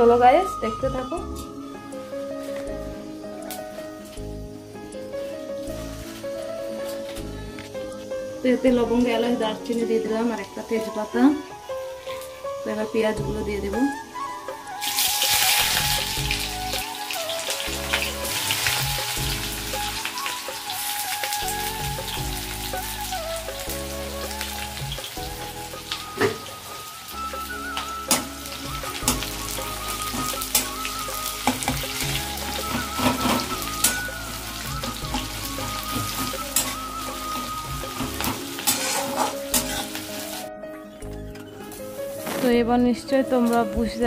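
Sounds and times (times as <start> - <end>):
onions sizzling in oil: 0.0 - 40.5, 41.6 - 44.0
background music with bass line: 13.2 - 43.0
spatula scraping a pan: 38.6 - 40.0.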